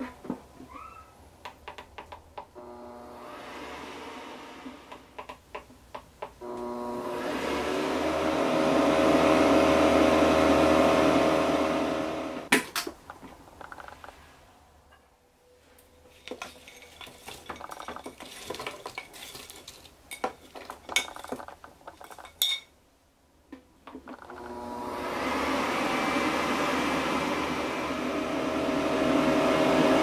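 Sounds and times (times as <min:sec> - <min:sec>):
air fryer motor humming: 0:02.6 - 0:05.0, 0:06.4 - 0:12.5, 0:24.2 - 0:30.0.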